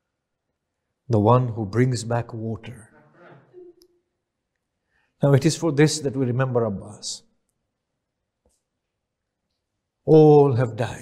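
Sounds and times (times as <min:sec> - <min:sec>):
man speaking: 0:01.1 - 0:03.0, 0:05.2 - 0:07.2, 0:10.1 - 0:11.0.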